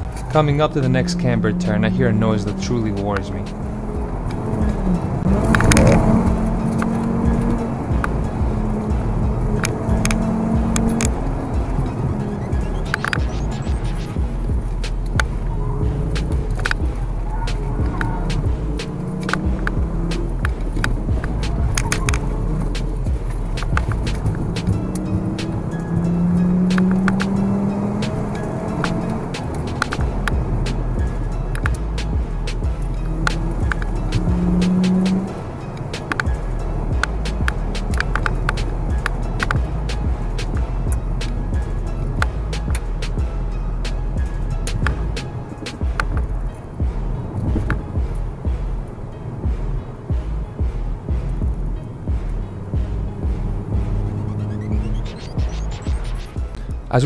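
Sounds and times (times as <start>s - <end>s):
car engine rising and falling: 0.0s - 57.0s
road rumble: 0.0s - 57.0s
sharp clicks: 2.8s - 8.2s, 9.4s - 14.2s, 16.1s - 25.8s, 26.6s - 41.4s, 43.9s - 46.3s.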